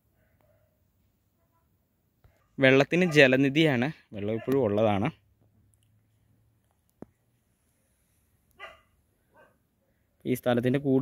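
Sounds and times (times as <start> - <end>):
faint short dog barks: 4.3 - 4.6, 8.6 - 9.6.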